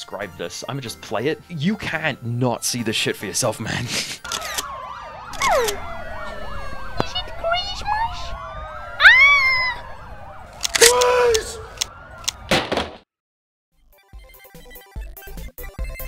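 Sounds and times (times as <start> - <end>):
police sirens wailing: 4.2 - 12.6
sharp shutter-like clicks: 4.3 - 4.7, 10.6 - 12.4.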